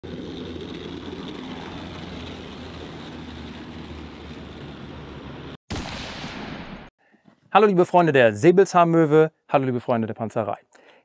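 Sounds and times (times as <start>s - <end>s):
tank diesel engine droning: 0.0s - 5.6s.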